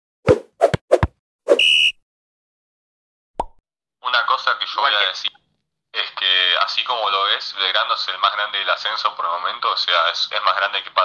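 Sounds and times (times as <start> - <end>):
short high beep: 1.5 - 2.0.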